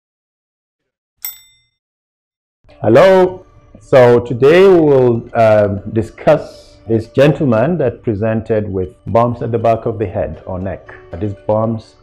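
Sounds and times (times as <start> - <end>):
bright metallic ding: 1.2 - 1.8.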